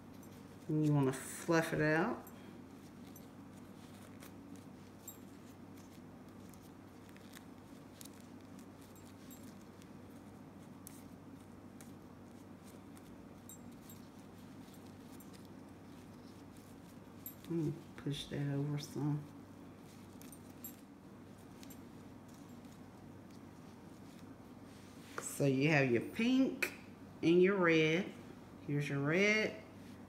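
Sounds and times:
ribbon rustling and clicking: 0.0s - 25.4s
low steady hum: 0.0s - 30.0s.

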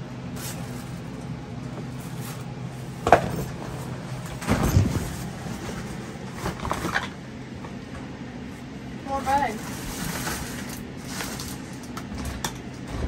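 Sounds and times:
plastic tote clattering and scraping: 2.0s - 7.2s.

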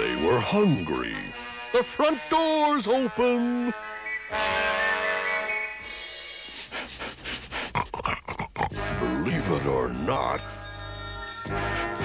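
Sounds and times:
cartoon background music: 0.0s - 6.7s, 8.7s - 12.0s.

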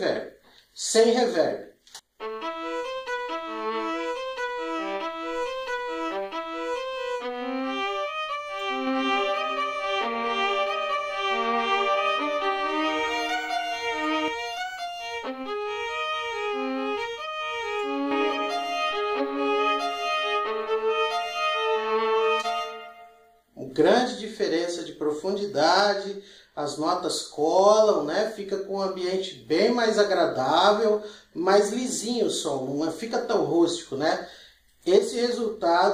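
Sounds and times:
violin melody: 2.2s - 23.6s.

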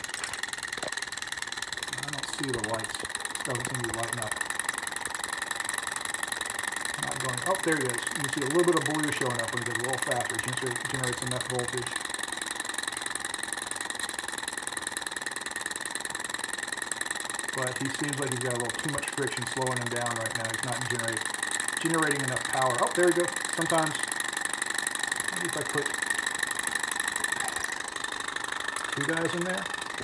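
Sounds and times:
stirling engine whirring and ticking: 0.0s - 30.0s.

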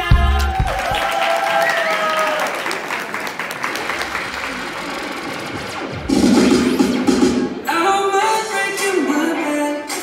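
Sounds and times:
audience clapping: 0.2s - 5.7s.

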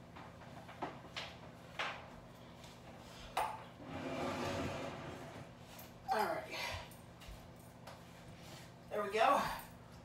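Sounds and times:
rustling and shuffling: 6.7s - 9.0s.

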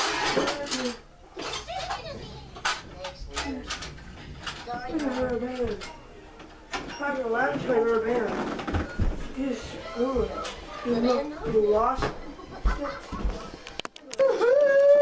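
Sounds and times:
boys talking: 0.2s - 6.1s, 9.2s - 13.6s.

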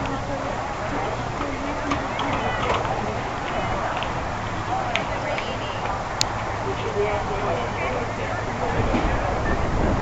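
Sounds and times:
crowd noise: 0.0s - 10.0s
spectators talking: 0.0s - 10.0s.

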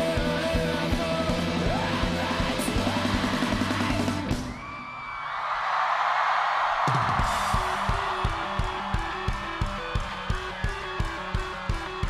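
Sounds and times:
rock band playing: 0.0s - 4.7s, 6.8s - 12.0s
crowd cheering and yelling: 2.5s - 12.0s
pulsing beat: 7.2s - 12.0s.

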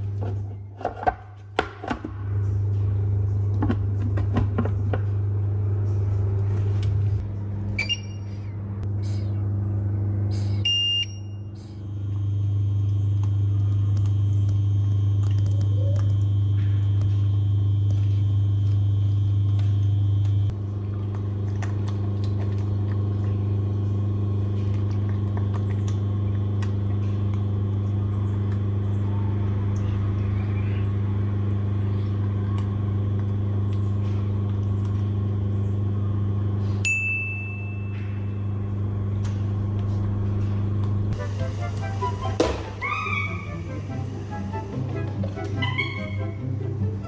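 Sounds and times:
kitchen appliance humming: 0.0s - 47.0s
short electronic beeps: 7.8s - 8.4s, 10.6s - 11.4s.

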